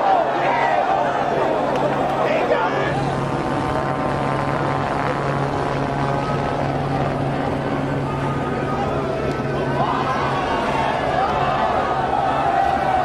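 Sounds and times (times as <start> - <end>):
large crowd noise: 0.0 - 13.0
low machine drone: 0.0 - 13.0.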